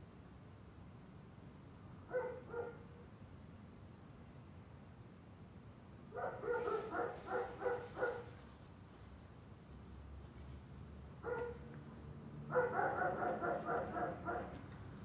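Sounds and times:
dog barking: 2.1s - 2.9s, 6.2s - 8.4s, 11.2s - 11.6s, 12.5s - 14.6s.

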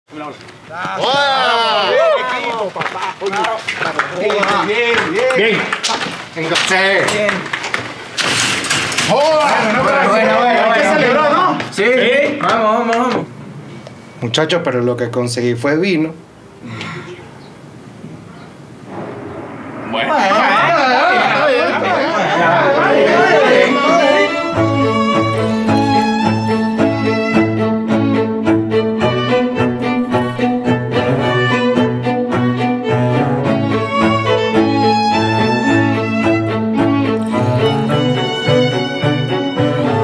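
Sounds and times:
men exclaiming and chattering: 0.3s - 7.5s, 9.1s - 13.4s, 20.0s - 24.4s
bowed string music: 20.8s - 40.0s.

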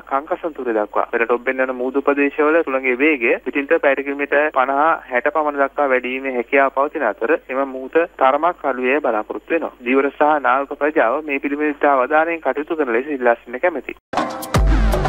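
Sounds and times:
man speaking over telephone: 0.0s - 14.0s.

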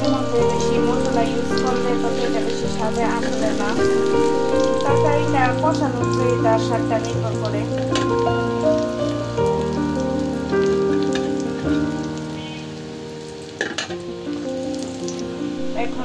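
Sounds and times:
background music of held notes: 0.0s - 16.0s
onions sizzling in hot oil: 0.0s - 16.0s.

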